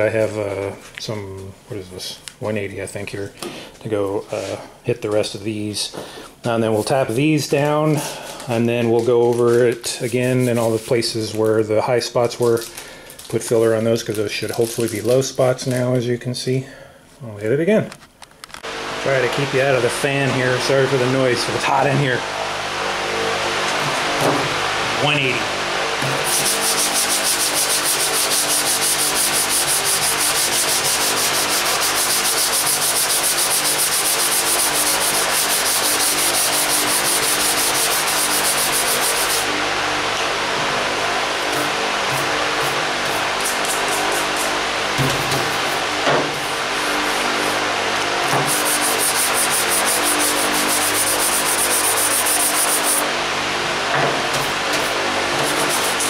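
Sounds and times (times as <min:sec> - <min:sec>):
shop fan humming: 0:00.0 - 0:56.0
hand sanding strokes: 0:06.6 - 0:08.0, 0:08.8 - 0:11.3, 0:26.0 - 0:39.5, 0:41.2 - 0:53.1, 0:54.4 - 0:56.0.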